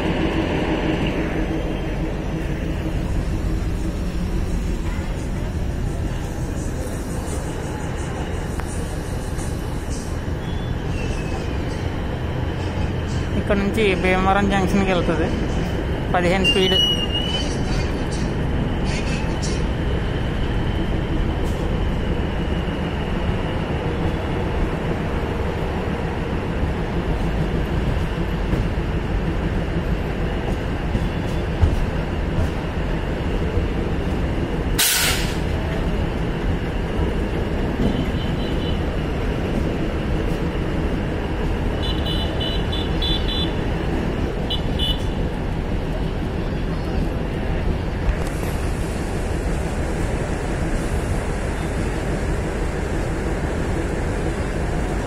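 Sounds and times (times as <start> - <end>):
train wheels on rails drone: 0.0 - 55.0
short sharp hiss: 34.8 - 35.4.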